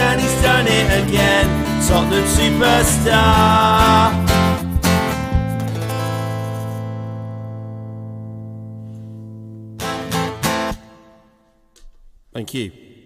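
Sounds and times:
strummed guitar chords: 0.0s - 11.3s
acoustic guitar chord ringing: 0.0s - 11.4s.

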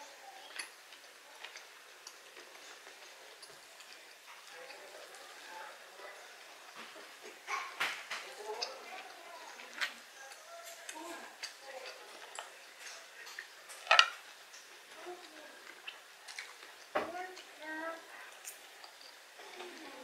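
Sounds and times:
chewing and mouth noises: 0.2s - 20.0s.

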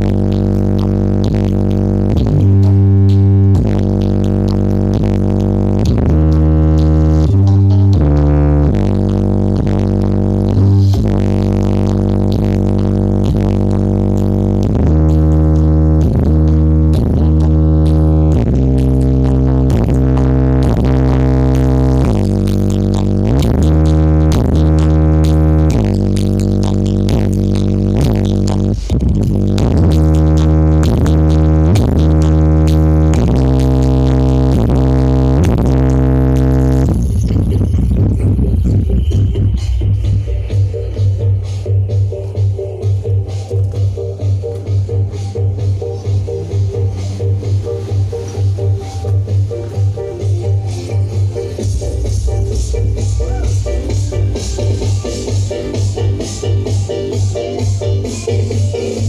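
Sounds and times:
deep droning bass music: 0.0s - 59.0s.

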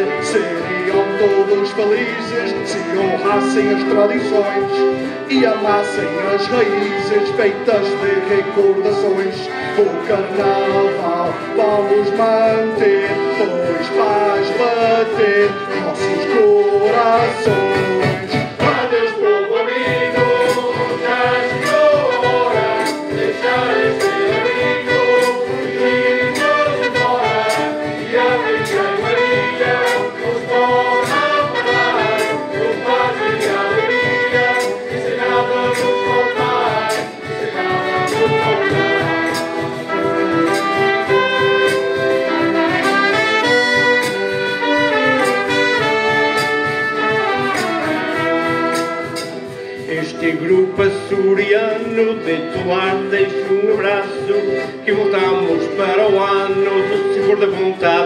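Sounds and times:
accordion: 0.0s - 58.0s
acoustic guitar: 0.0s - 58.0s
saxophone: 0.0s - 58.0s
trumpet: 0.0s - 58.0s.

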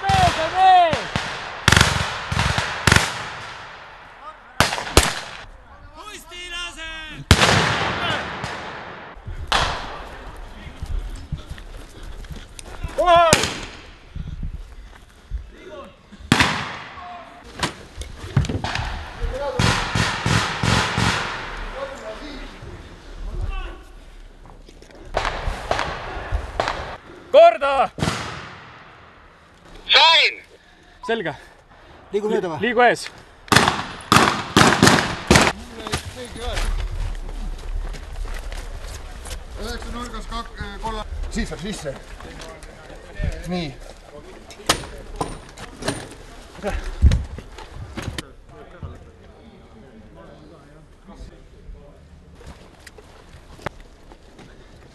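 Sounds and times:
rifle gunshots with echo: 0.0s - 5.5s, 7.3s - 10.1s, 18.6s - 21.8s, 25.2s - 27.0s, 33.5s - 35.6s.

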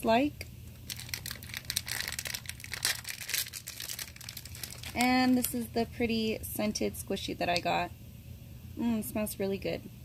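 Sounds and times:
plastic foil wrapper crackling: 0.7s - 5.7s.

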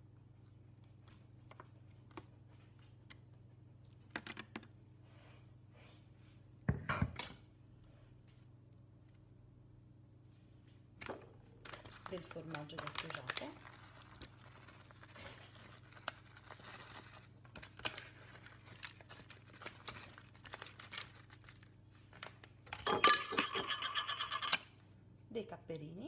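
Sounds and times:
plastic bag crinkling: 11.5s - 22.8s.

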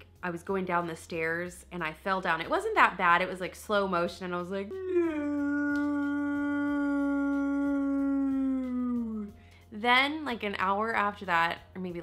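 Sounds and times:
woman holding long ooh: 4.7s - 9.4s.

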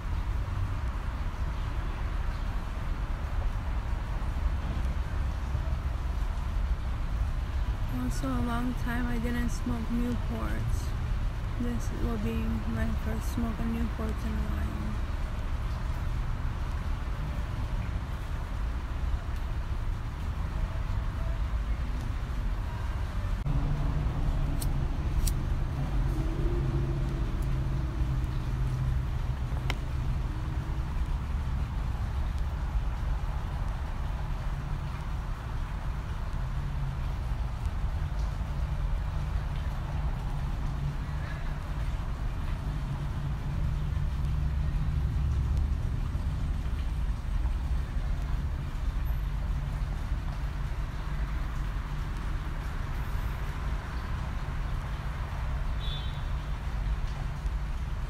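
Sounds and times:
low rumble of distant traffic: 0.0s - 58.0s.

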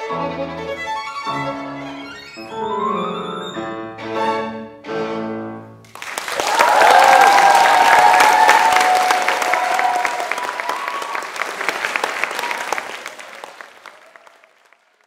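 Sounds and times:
audience applauding: 5.9s - 15.0s
voices cheering: 6.3s - 14.8s.

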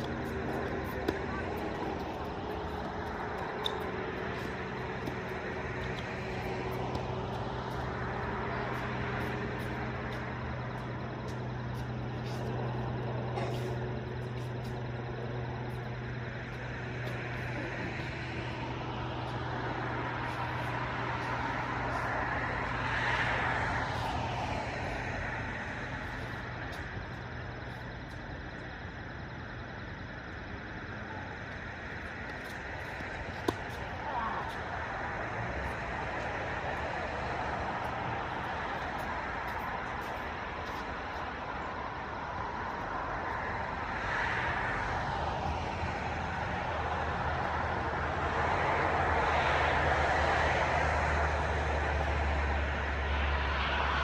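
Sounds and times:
low steady hum: 0.0s - 48.0s
road traffic: 0.0s - 54.0s
vehicle passing: 0.0s - 54.0s.

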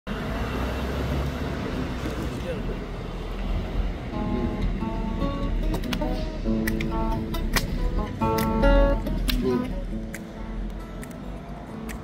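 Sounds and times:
traffic rumble: 0.1s - 12.0s.

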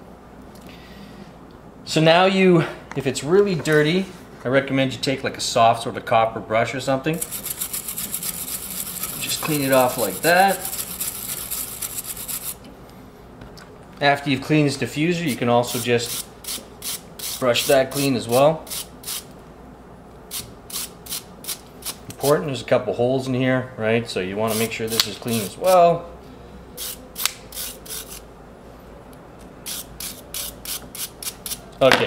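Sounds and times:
brush scrubbing metal: 7.2s - 12.6s, 15.1s - 19.2s.

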